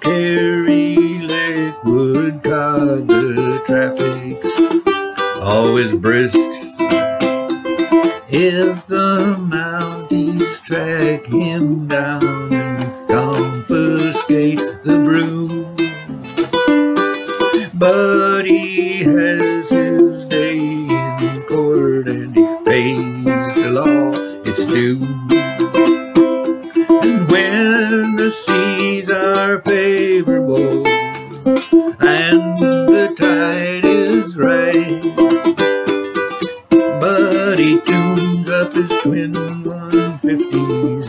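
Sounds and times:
man singing: 0:00.0 - 0:07.1, 0:08.0 - 0:16.1, 0:17.2 - 0:26.0, 0:26.6 - 0:36.0, 0:36.7 - 0:41.0
ukulele strumming: 0:00.0 - 0:41.0.

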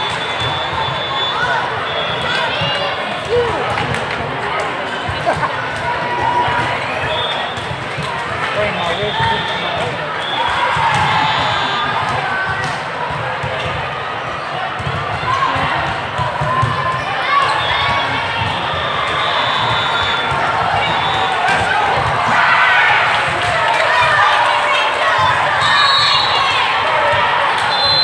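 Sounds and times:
chatter and calls of people: 0:00.0 - 0:28.0
volleyballs struck and bouncing: 0:02.2 - 0:18.9.

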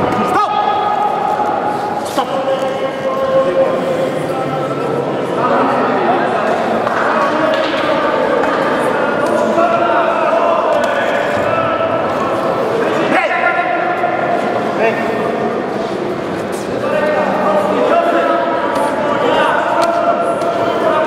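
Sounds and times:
people shouting and talking: 0:00.0 - 0:21.0.

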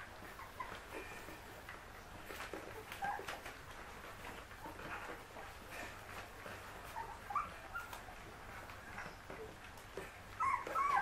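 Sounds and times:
puppies whimpering: 0:00.0 - 0:11.0.

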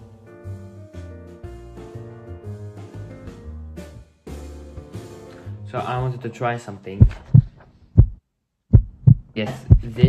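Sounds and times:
dull low thumps: 0:07.0 - 0:10.0.

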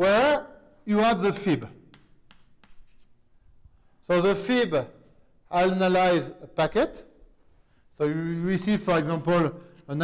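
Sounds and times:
writing strokes: 0:01.4 - 0:03.2.

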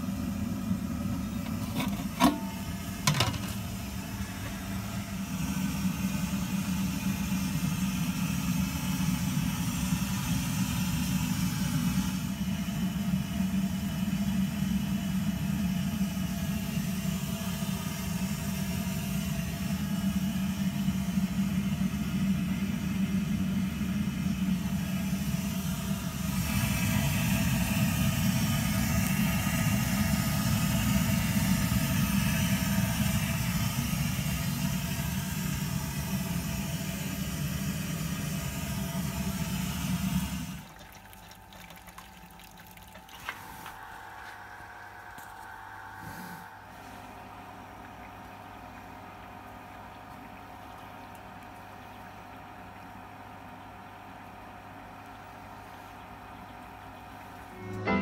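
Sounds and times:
electric pump humming: 0:00.0 - 0:58.0
hiss: 0:46.0 - 0:46.6.

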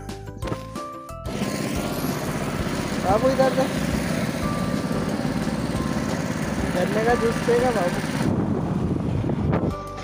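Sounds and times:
small engine running: 0:01.2 - 0:09.5.

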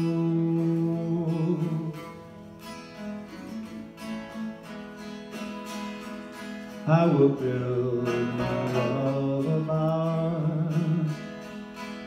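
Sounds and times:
person singing: 0:00.0 - 0:02.2, 0:06.8 - 0:11.3
acoustic guitar strumming: 0:00.0 - 0:12.0.

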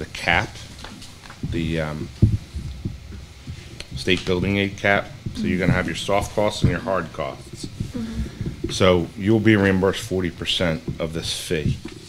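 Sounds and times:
dull low thumps: 0:00.0 - 0:11.9.

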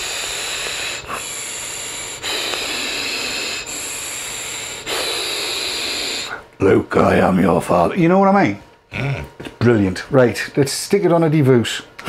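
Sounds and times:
breathing through airflow holes: 0:00.0 - 0:06.5.

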